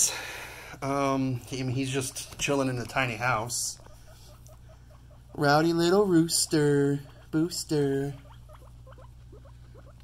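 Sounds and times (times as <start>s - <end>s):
guinea pig squeaking: 1.1s - 10.0s.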